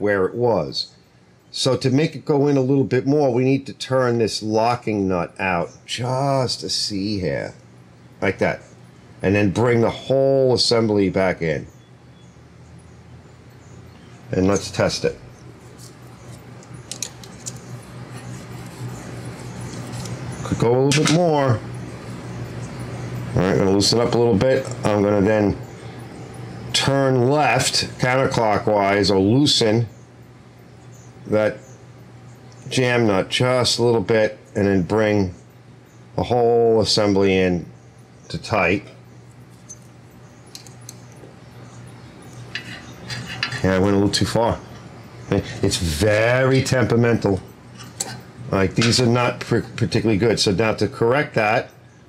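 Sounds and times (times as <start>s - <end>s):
low steady hum: 0.0s - 52.0s
feeler gauge clicking and scraping: 15.6s - 21.2s, 40.5s - 41.3s, 42.2s - 43.8s
small ticks: 39.1s - 43.5s
metal tool clicks: 40.5s - 41.2s.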